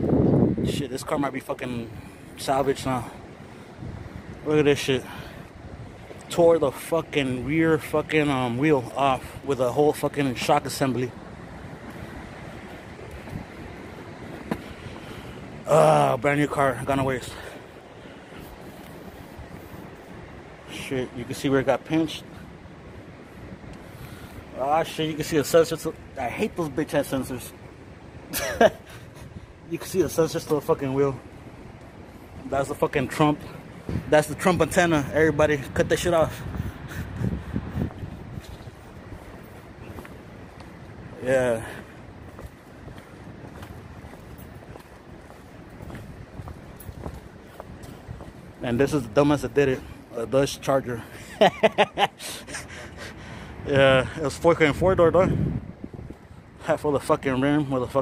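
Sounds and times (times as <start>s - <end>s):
street traffic rumble: 0.0s - 58.0s.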